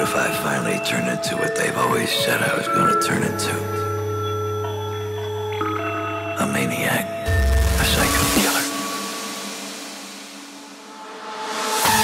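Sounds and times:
hissing noise wash: 7.3s - 12.0s.

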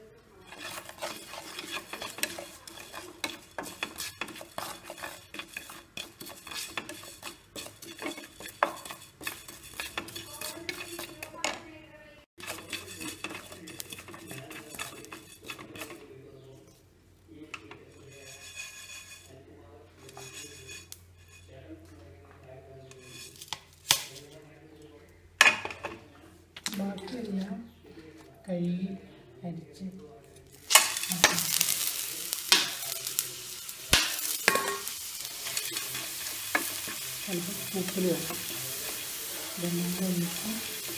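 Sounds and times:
spatula scraping seeds in a pan: 0.4s - 11.6s, 12.4s - 16.8s, 17.4s - 21.6s, 22.8s - 24.4s, 30.3s - 40.9s.

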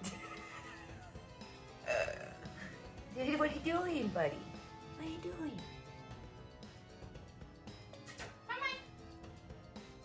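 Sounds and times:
soft background music: 0.0s - 10.0s.

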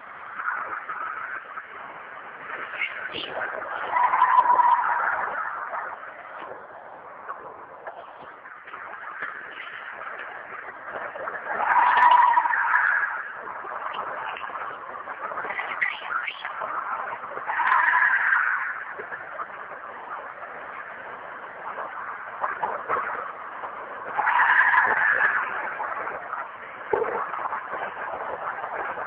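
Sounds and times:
high-pitched animal shriek: 3.8s - 5.5s
loud rough screeching wail: 3.8s - 5.7s, 11.6s - 13.3s, 24.2s - 25.5s.

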